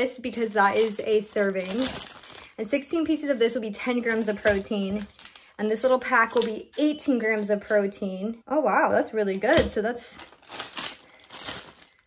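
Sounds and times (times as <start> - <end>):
plastic packaging crinkling: 0.3 - 2.7, 3.8 - 6.7, 9.5 - 12.0.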